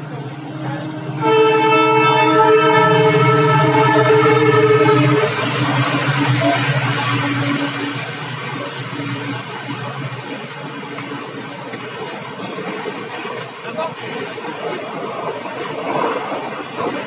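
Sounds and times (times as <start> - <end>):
train coaches rushing past: 0.0 - 17.0
locomotive horn: 0.5 - 9.3.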